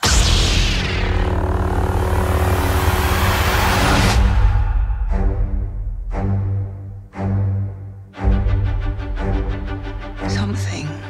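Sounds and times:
lightsaber buzzing hum: 0.0 - 4.0
orchestral music: 1.5 - 11.0.

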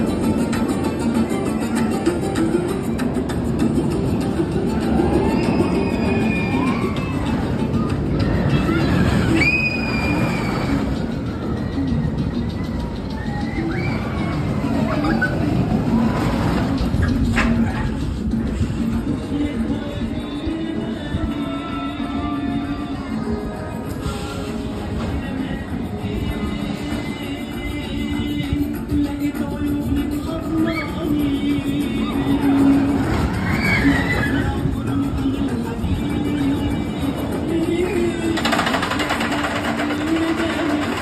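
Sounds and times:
outdoor background noise: 0.0 - 41.0
roller coaster rumbling on track: 0.0 - 41.0.

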